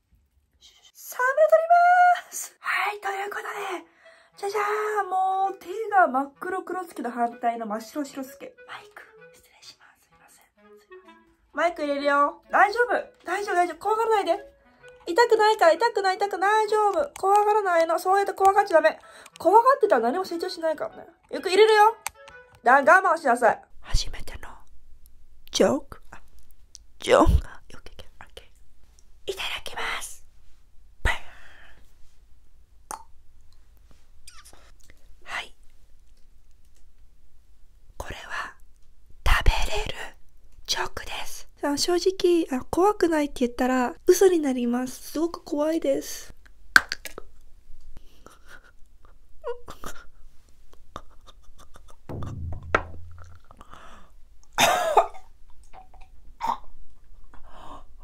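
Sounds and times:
woman whispering: 8.6s - 10.6s, 23.8s - 24.7s, 27.1s - 28.6s, 29.2s - 30.3s, 34.3s - 35.6s, 38.0s - 38.6s, 39.3s - 41.6s
short low thump: 52.1s - 53.8s
woman gagging and coughing: 54.6s - 55.3s.

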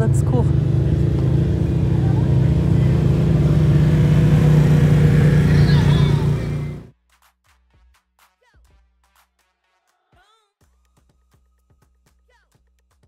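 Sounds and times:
utility vehicle engine running: 0.0s - 6.9s.

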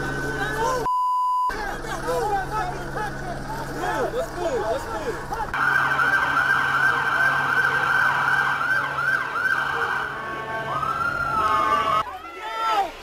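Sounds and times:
emergency siren: 5.5s - 12.0s.

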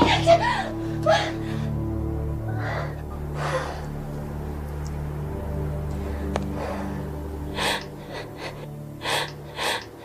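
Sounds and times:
low film score drone: 0.0s - 10.0s.

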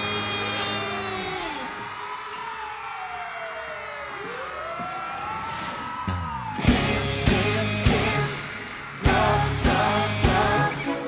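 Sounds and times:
siren-like sweeping tones: 0.0s - 11.0s
band music: 6.6s - 11.0s.

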